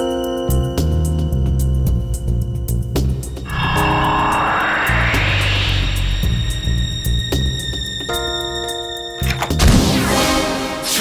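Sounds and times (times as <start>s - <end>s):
rising whoosh effect: 3.4s - 7.9s.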